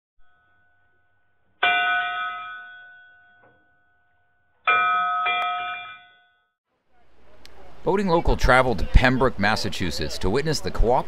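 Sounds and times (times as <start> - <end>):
bell ringing: 0.2 - 6.5.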